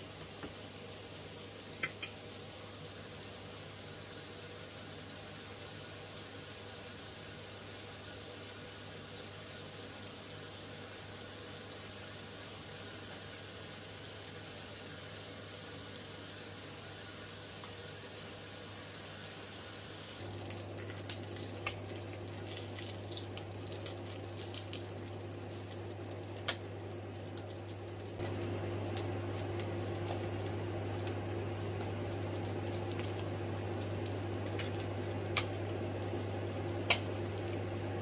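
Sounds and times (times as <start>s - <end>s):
fish sizzling in hot oil: 0.0s - 38.0s.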